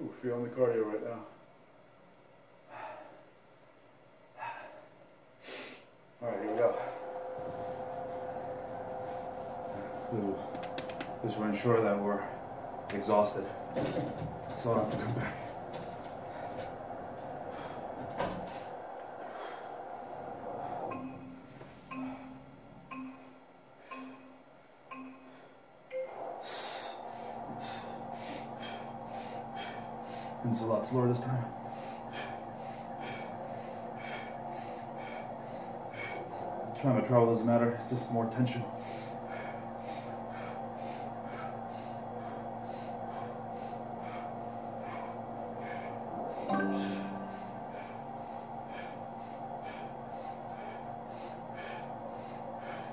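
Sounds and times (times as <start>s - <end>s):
man breathing hard: 2.6s - 3.5s, 4.3s - 6.0s, 15.0s - 21.0s, 26.4s - 36.8s, 38.7s - 52.9s.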